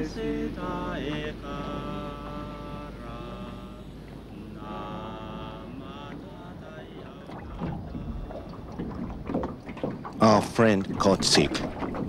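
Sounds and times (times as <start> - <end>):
water and wind noise: 0.0 - 12.0.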